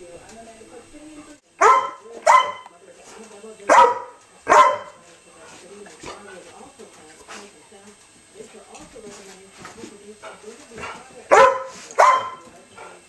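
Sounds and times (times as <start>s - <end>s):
dog barking: 1.6s - 2.7s, 3.7s - 5.0s, 11.3s - 12.5s.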